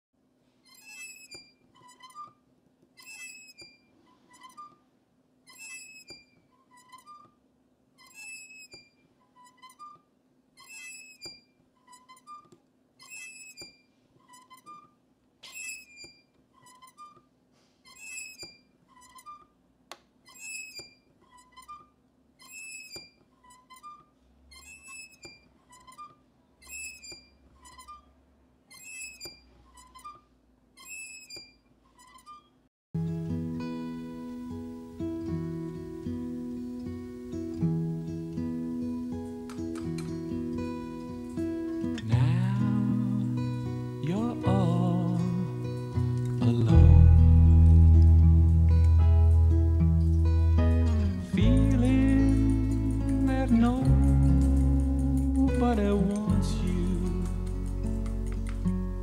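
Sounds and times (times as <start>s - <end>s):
porch swing chains squeaking: 0.7s - 2.4s, 3.0s - 4.8s, 5.5s - 7.4s, 8.0s - 10.0s, 10.6s - 17.2s, 17.9s - 19.5s, 20.2s - 28.1s, 28.7s - 32.6s, 50.1s - 59.0s.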